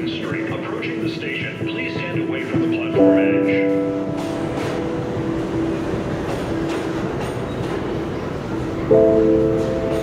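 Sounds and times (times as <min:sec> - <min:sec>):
subway train rushing past: 0:00.0 - 0:10.0
wheels clacking over rail joints: 0:03.6 - 0:10.0.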